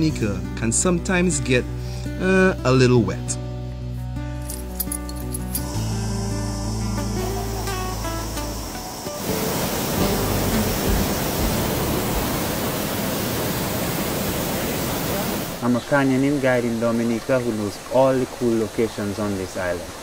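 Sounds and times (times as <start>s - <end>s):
background music sustained notes: 0.0s - 17.1s
waterfall rushing into pool: 7.2s - 20.0s.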